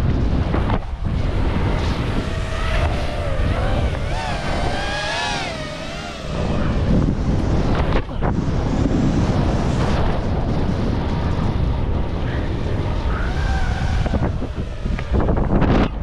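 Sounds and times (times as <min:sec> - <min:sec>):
wind rushing over camera: 0:00.0 - 0:16.0
wavering whistling tone: 0:02.2 - 0:06.9, 0:12.8 - 0:15.4.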